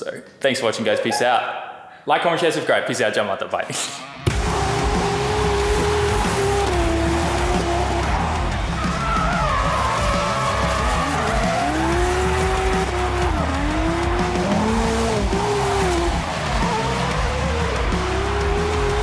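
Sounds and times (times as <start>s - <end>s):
car engine revving: 4.1s - 19.0s
tyres skidding: 4.2s - 19.0s.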